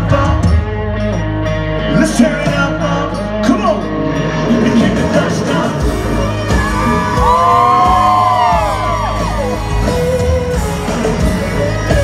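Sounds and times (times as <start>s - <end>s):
live country-rock band: 0.0s - 12.0s
audience whooping and yelling: 6.1s - 12.0s.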